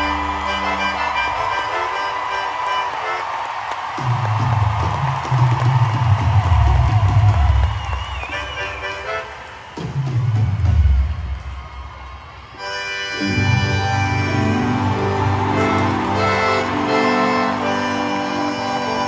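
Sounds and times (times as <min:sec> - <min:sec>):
live rock band in concert: 0:00.0 - 0:19.0.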